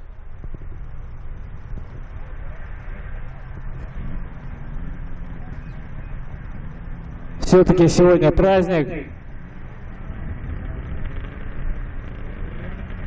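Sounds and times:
snowmobile engines idling: 0:00.0 - 0:13.0.

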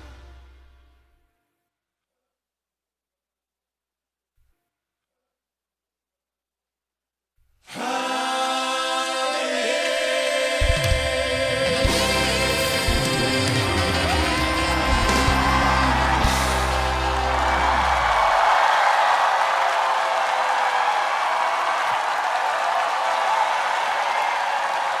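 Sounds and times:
audience applauding and cheering: 0:10.7 - 0:25.0
live band playing: 0:11.6 - 0:18.2.

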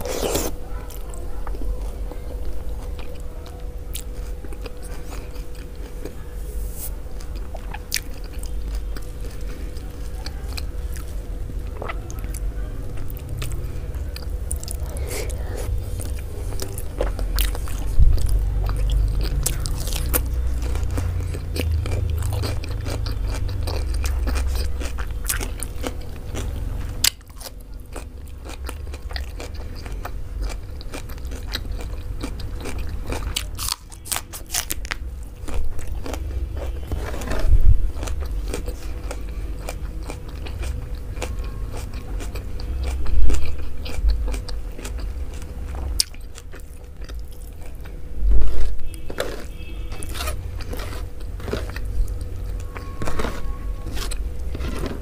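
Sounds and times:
chewing and biting: 0:00.0 - 0:06.2, 0:07.2 - 0:55.0
cucumber crunching: 0:00.0 - 0:55.0.

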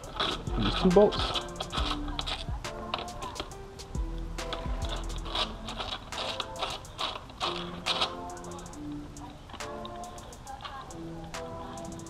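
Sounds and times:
held melody notes: 0:00.0 - 0:12.0
ticking beat: 0:00.0 - 0:12.0.

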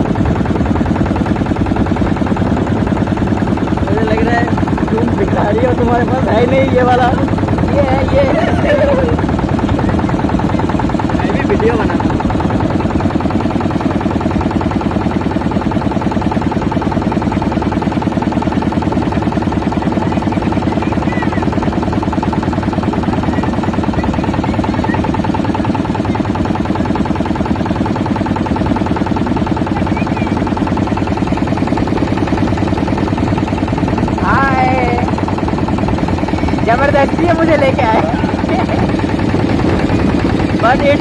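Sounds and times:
motorboat engine chugging: 0:00.0 - 0:41.0.

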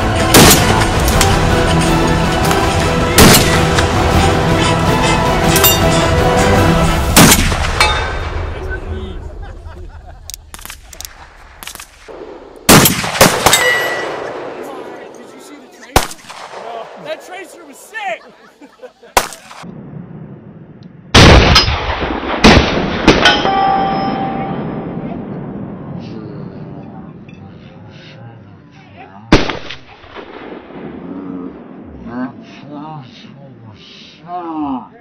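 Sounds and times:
sharp crack: 0:00.3 - 0:01.4, 0:03.2 - 0:04.0, 0:07.1 - 0:08.6, 0:10.3 - 0:14.7, 0:15.9 - 0:16.9, 0:19.1 - 0:19.8, 0:20.8 - 0:23.5, 0:29.3 - 0:31.2
loud rifle shot with rumble: 0:07.2 - 0:08.4, 0:11.5 - 0:14.5, 0:19.2 - 0:23.4
sharp cracks: 0:10.3 - 0:14.3, 0:16.0 - 0:16.8, 0:19.2 - 0:19.8
metallic ringing: 0:13.5 - 0:14.2, 0:23.2 - 0:25.0.

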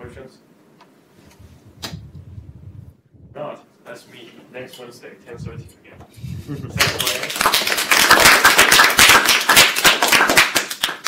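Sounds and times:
audience applauding: 0:06.8 - 0:11.0.

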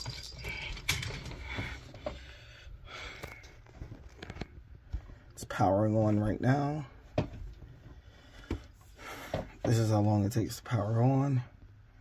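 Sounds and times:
small handling clicks and rustles: 0:00.0 - 0:02.3, 0:03.1 - 0:05.4
low steady room hum: 0:00.0 - 0:12.0.

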